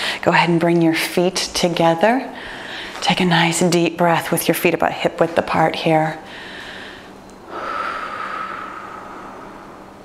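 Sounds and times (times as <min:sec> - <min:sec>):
woman breathing deeply: 0:02.3 - 0:03.0, 0:06.2 - 0:10.0.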